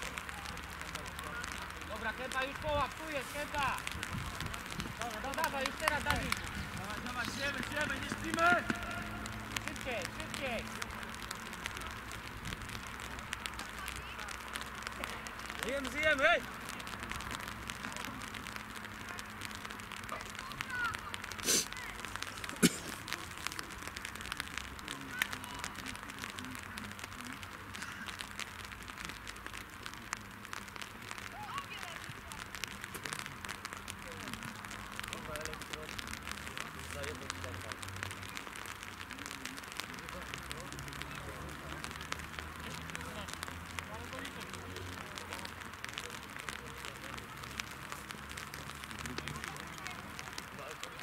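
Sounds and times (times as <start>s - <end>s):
distant voices of players: 0.0s - 51.0s
steady crackling hiss: 0.0s - 51.0s.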